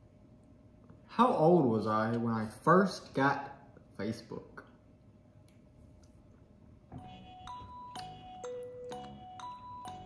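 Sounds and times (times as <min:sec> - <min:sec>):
glockenspiel melody: 0:07.0 - 0:10.0.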